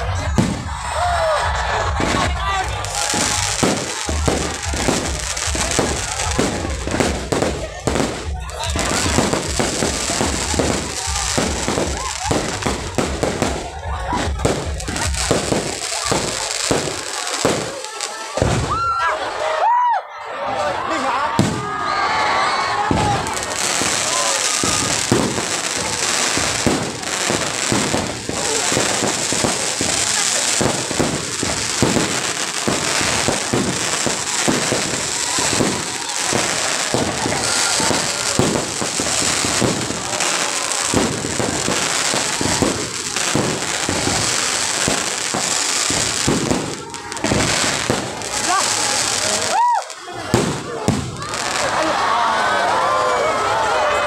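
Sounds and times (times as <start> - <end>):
fireworks bangs and crackles: 0.0 - 19.4, 21.3 - 52.8.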